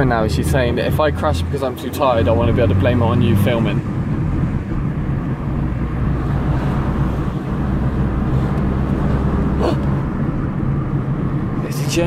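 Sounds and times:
car engine hum inside cabin: 0.0 - 12.0
road noise: 0.0 - 12.0.

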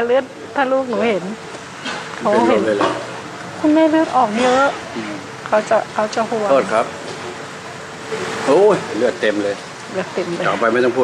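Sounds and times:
steady hiss: 0.0 - 11.0
person speaking: 0.6 - 1.4, 2.2 - 3.0, 3.6 - 6.9, 8.5 - 11.0.

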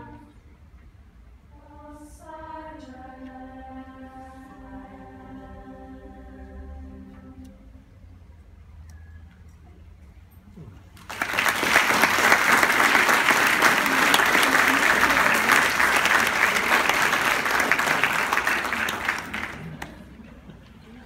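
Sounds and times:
audience applauding: 11.0 - 20.2.

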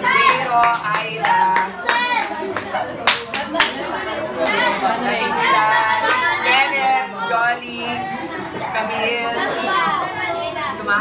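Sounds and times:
people talking and chattering: 0.0 - 11.0.

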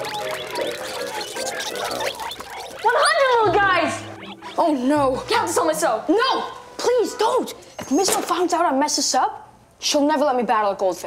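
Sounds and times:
high-pitched wavering cry: 0.0 - 5.7.

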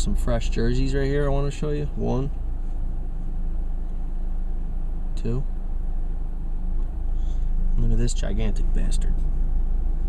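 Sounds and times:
car engine idling: 0.0 - 10.0.

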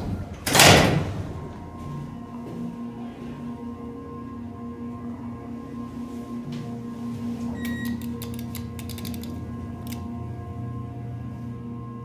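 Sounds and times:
elevator hum: 0.0 - 12.0
sharp clicks and rattles: 8.0 - 10.0.

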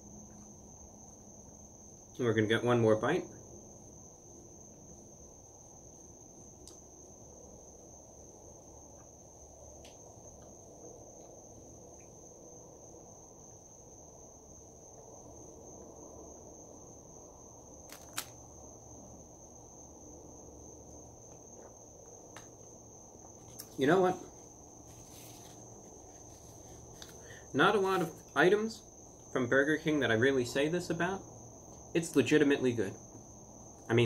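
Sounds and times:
steady high-pitched whine: 0.0 - 34.0
sharp click: 17.9 - 18.4.

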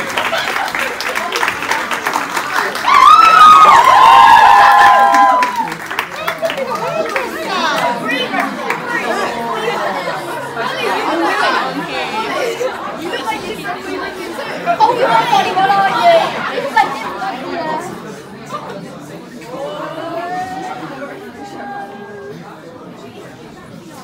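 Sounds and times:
people chattering: 0.0 - 24.0.

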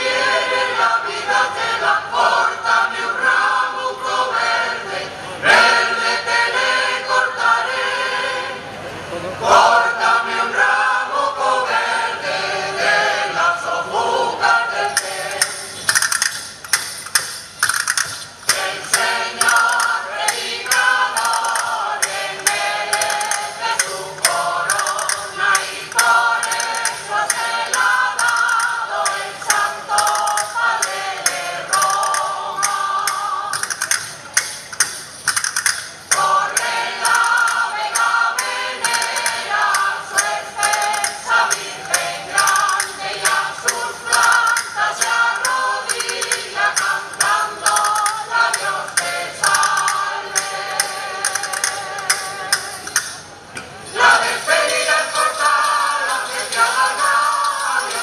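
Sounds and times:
mixed choir singing a cappella: 0.0 - 15.8, 18.4 - 33.8, 36.1 - 53.1, 53.8 - 58.0
sharp percussive strikes: 14.9 - 58.0.

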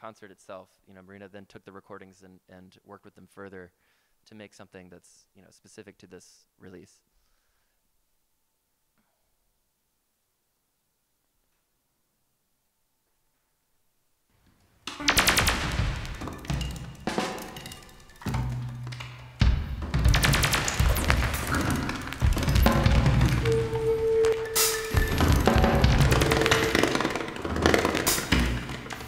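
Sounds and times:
rapid drum strikes: 14.9 - 29.0
held electronic tones: 20.6 - 27.4.

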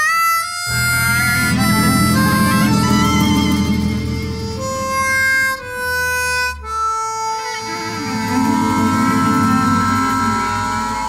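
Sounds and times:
harmonica slow melody: 0.0 - 11.0
low accompaniment: 0.6 - 11.0.

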